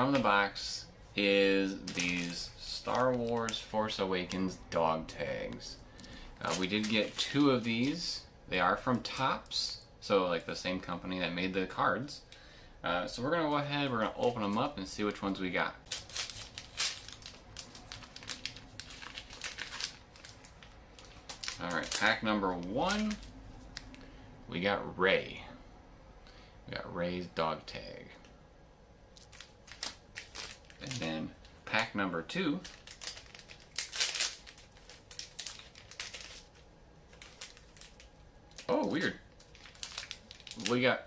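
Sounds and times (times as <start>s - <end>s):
foil wrapper tearing and crinkling: 1.8s - 4.5s, 6.0s - 8.0s, 15.9s - 24.0s, 29.2s - 31.9s, 32.5s - 40.9s.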